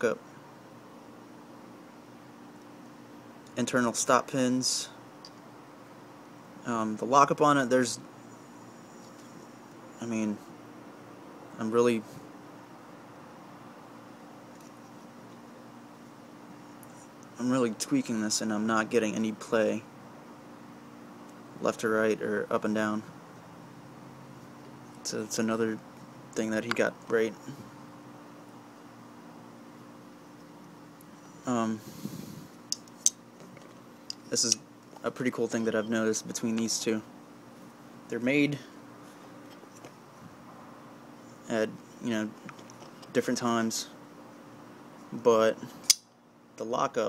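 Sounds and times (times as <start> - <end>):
background hiss: 0.0 - 47.0.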